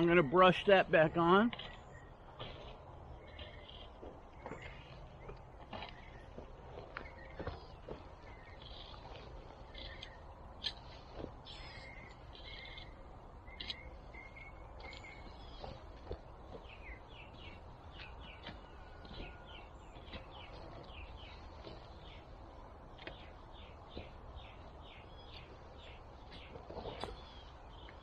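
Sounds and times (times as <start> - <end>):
small birds chirping: 0.0 - 28.0.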